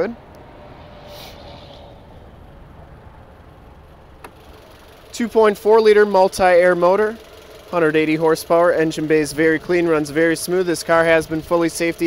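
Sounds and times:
brief hiss: 0.9 - 2.0
car engine idling: 1.3 - 12.0.

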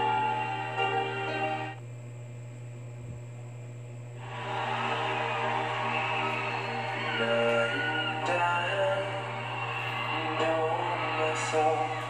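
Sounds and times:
concert music from tv speakers: 0.0 - 1.8, 4.2 - 12.0
steady low hum: 0.0 - 12.0.

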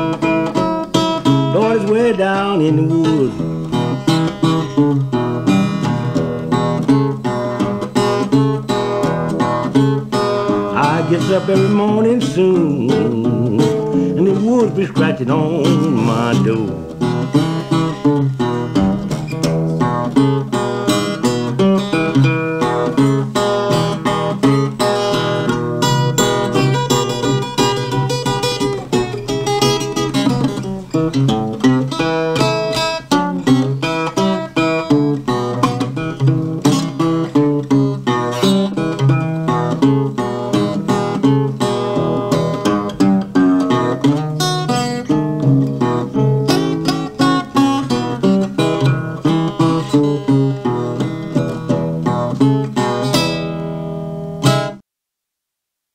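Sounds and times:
acoustic blues guitar: 0.0 - 54.8.

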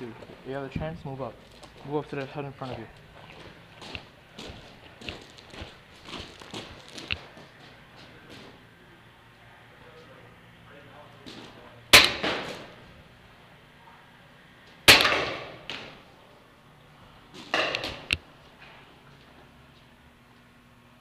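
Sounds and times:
paintball shots echoing: 11.9 - 12.8, 14.8 - 16.0, 17.5 - 18.2.

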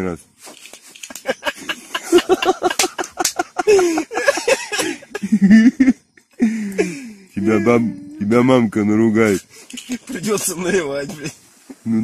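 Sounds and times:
clicky sounds: 0.5 - 1.4
men laughing hard: 1.1 - 7.8.

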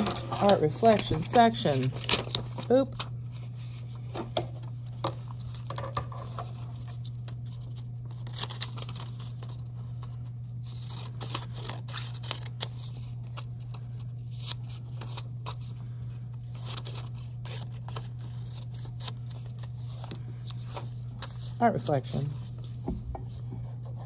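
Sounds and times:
steady low hum: 0.0 - 24.0
scissors cutting paper: 10.6 - 13.7, 16.4 - 22.3.

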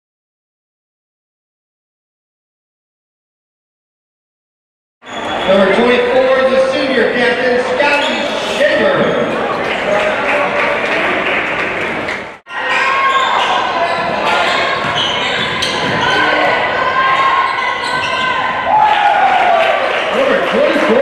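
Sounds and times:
voices echoing in gymnasium: 5.0 - 21.0.

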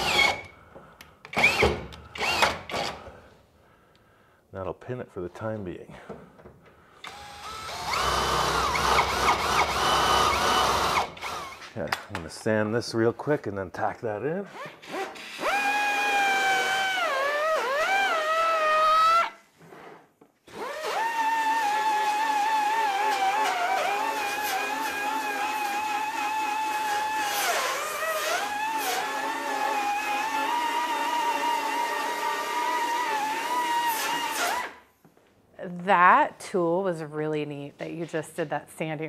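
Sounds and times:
belt sander whining: 7.0 - 11.7.

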